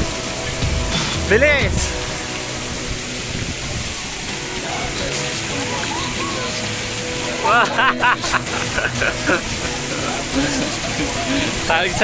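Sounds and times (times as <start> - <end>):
water running and splashing: 0.0 - 12.0.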